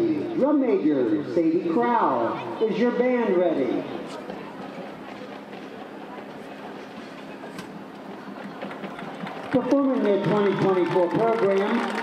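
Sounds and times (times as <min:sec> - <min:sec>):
distant crowd chatter: 0:00.0 - 0:12.0
faint constant hum: 0:00.0 - 0:12.0.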